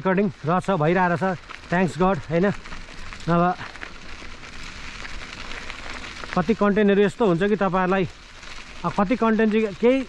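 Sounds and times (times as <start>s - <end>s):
bike tyres rolling on gravel: 0.0s - 10.0s.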